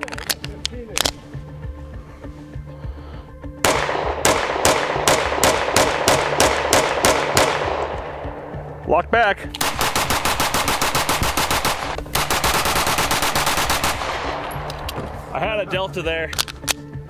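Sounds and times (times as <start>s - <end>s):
steady background music: 0.0s - 17.0s
pistol firing rapid shots: 3.6s - 8.0s, 9.6s - 14.5s
pistol slide locking back: 16.3s - 16.9s.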